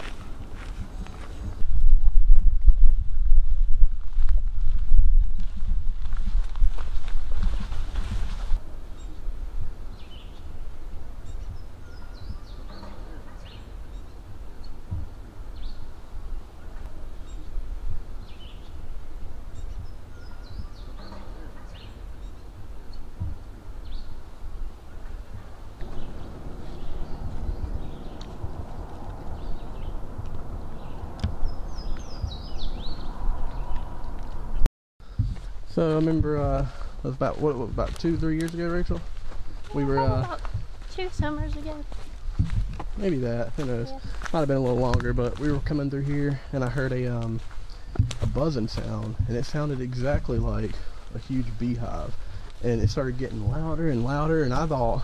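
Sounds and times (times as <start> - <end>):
low rumble: 0.0 - 46.1
songbirds chirping: 8.6 - 55.0.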